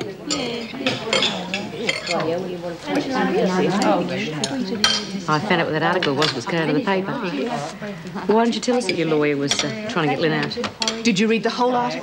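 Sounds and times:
cutlery clinking on plates: 0:00.0 - 0:02.4, 0:03.7 - 0:05.2, 0:05.9 - 0:06.7, 0:08.7 - 0:11.1
voices talking: 0:00.0 - 0:12.0.

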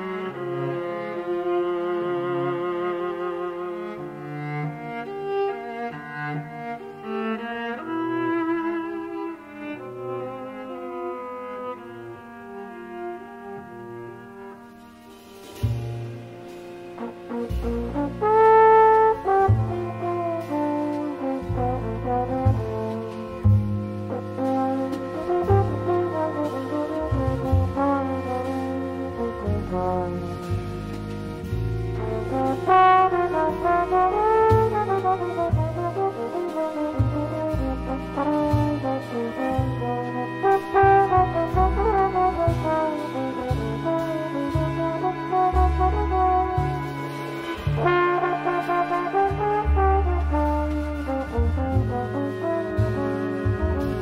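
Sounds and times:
low bass notes: 0:15.4 - 0:54.0
string ensemble bowing chords: 0:17.0 - 0:54.0
trombone holding long notes: 0:17.0 - 0:54.0.

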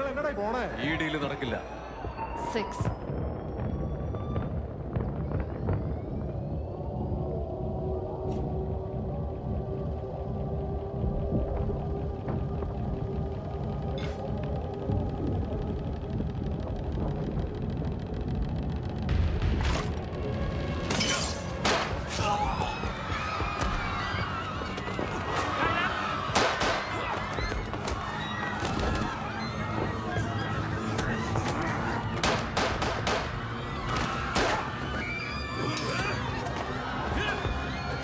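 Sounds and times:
muffled fireworks rumble: 0:00.0 - 0:20.9, 0:21.5 - 0:35.3
music: 0:00.0 - 0:38.0.

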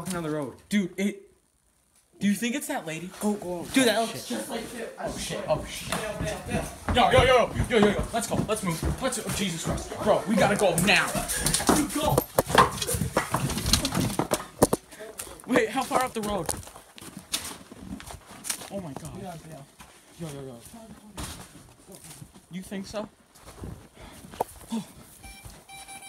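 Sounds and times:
knocks bumps and scuffling: 0:05.0 - 0:19.2, 0:20.6 - 0:22.4
low breathy voices: 0:24.0 - 0:25.1
high electronic beeps: 0:25.2 - 0:26.0.

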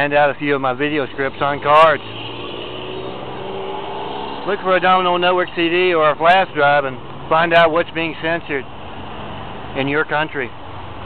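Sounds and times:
cars driving past: 0:00.0 - 0:11.0
engine note rising: 0:01.0 - 0:06.6.

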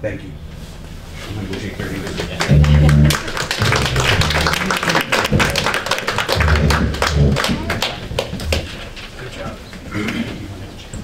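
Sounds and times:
people applauding: 0:02.1 - 0:08.8
low thumps: 0:02.5 - 0:09.0.

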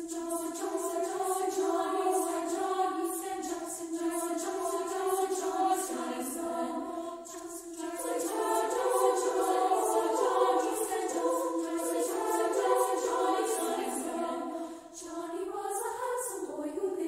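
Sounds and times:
women's choir singing chords: 0:00.0 - 0:17.0.

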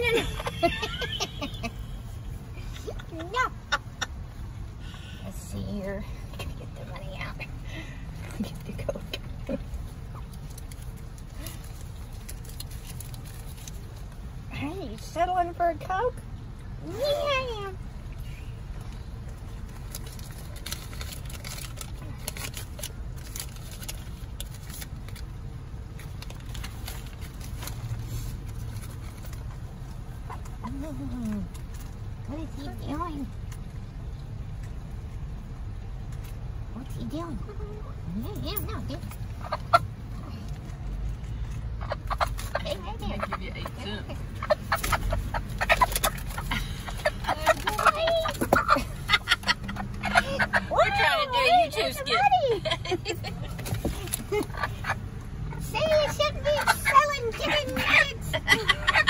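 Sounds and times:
car engine idling: 0:00.0 - 0:59.0
chicken clucking: 0:39.0 - 0:40.1, 0:41.7 - 0:51.1, 0:53.4 - 0:59.0.

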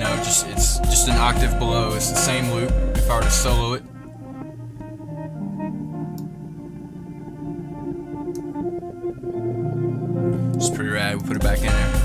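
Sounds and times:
looped electric guitar swells: 0:00.0 - 0:12.0.

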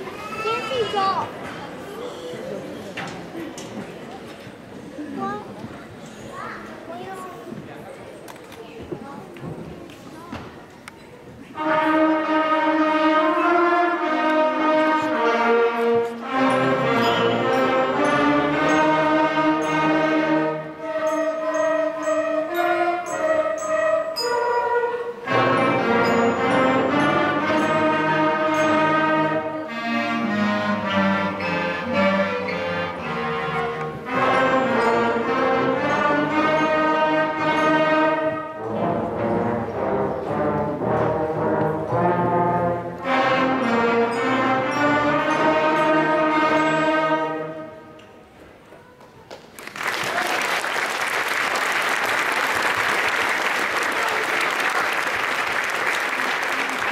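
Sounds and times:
audience applauding: 0:49.3 - 0:56.9.

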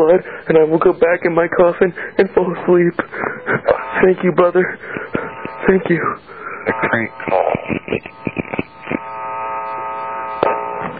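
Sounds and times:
buzzing hum on telephone line: 0:00.0 - 0:10.9
short laugh: 0:03.0 - 0:04.0, 0:04.6 - 0:09.1.

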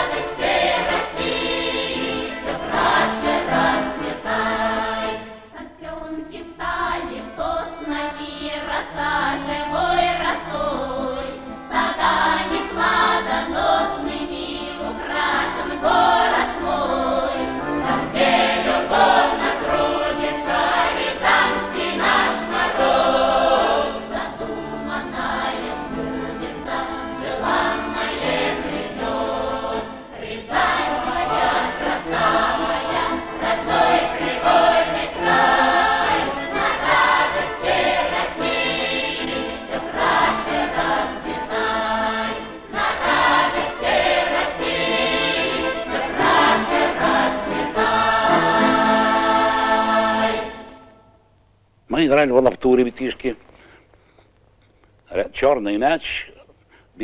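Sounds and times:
accordions: 0:00.0 - 0:51.0
choir singing in parts: 0:00.0 - 0:51.2.

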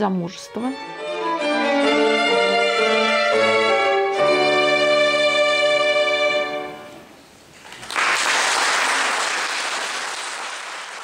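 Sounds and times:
applause: 0:07.6 - 0:11.0.

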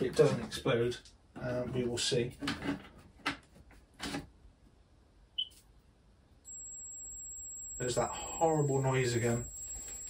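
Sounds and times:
high-pitched whine: 0:06.5 - 0:10.0.

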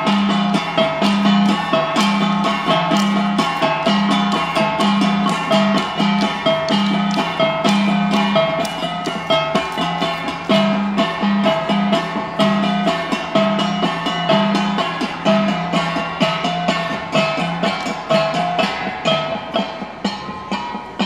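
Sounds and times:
metal gongs playing rhythm: 0:00.0 - 0:21.0.

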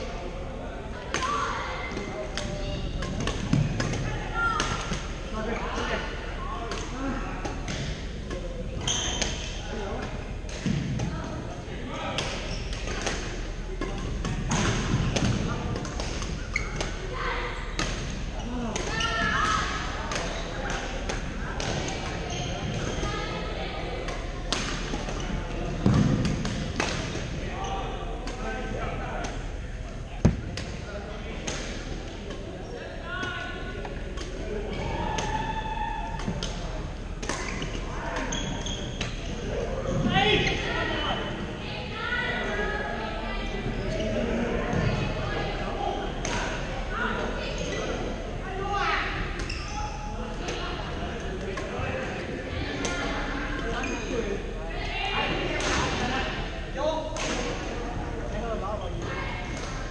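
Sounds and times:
chatter of voices: 0:00.0 - 0:59.9.

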